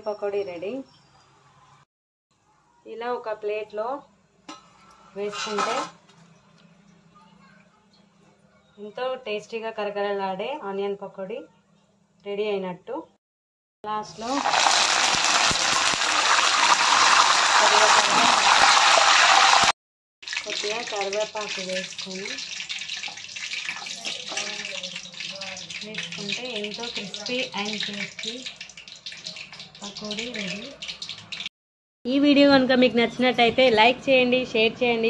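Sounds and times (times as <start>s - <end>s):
food sizzling in hot oil: 5.0s - 6.0s, 14.1s - 31.5s.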